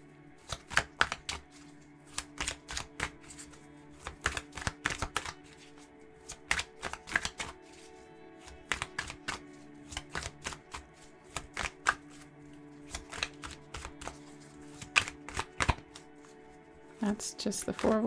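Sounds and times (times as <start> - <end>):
soft background music drone: 0.0 - 18.0
cards being shuffled: 0.4 - 18.0.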